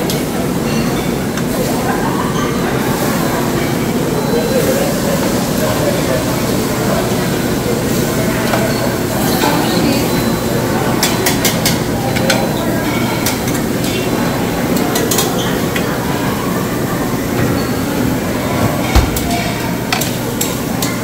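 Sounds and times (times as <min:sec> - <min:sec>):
crowd chatter: 0:00.0 - 0:21.0
utensils and dishes clinking: 0:00.0 - 0:21.0.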